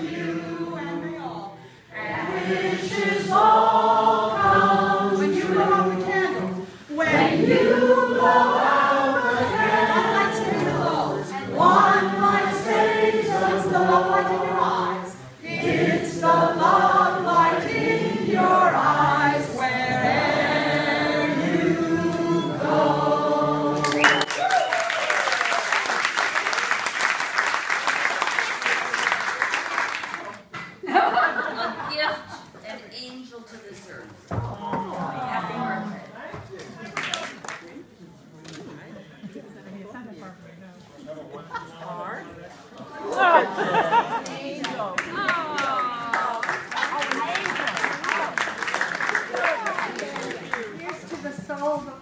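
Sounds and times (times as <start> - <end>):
group of voices singing: 0.0 - 24.3
applause: 23.8 - 30.5, 36.6 - 37.8, 44.2 - 51.4.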